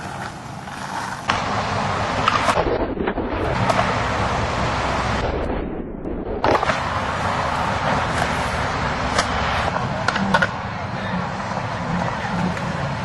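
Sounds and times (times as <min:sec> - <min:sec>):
skateboard clacks: 0:00.0 - 0:02.6, 0:09.1 - 0:13.0
skateboard wheels rolling on pavement: 0:00.0 - 0:02.7, 0:03.5 - 0:05.2, 0:06.4 - 0:13.0.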